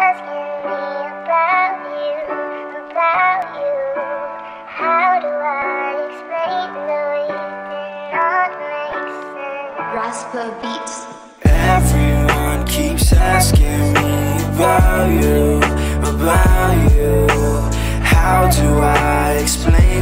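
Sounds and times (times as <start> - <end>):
voice-like synth melody over chords: 10.8 - 20.0.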